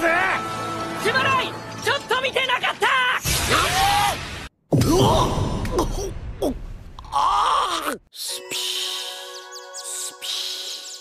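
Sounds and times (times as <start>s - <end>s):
character groaning: 4.9s - 8.5s.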